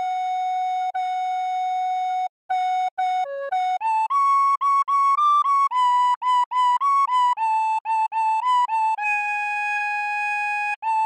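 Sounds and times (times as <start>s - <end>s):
recorder playing a melody: 0.0s - 11.0s.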